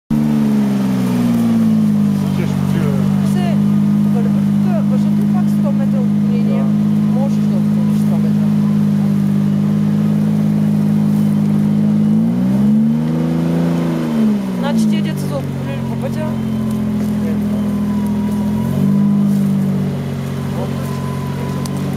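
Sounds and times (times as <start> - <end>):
engine revving hard: 0.1 - 21.9.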